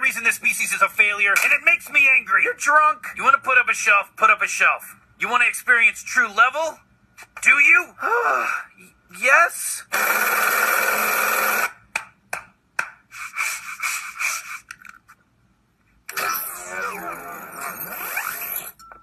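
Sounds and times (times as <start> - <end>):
cartoon sigh: 8.0 - 8.7.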